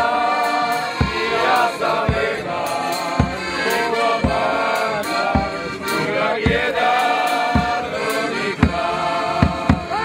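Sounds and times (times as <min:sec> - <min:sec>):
bass drum beats: 0:00.0 - 0:10.0
men singing: 0:00.0 - 0:10.0
piano accordion: 0:00.0 - 0:10.0.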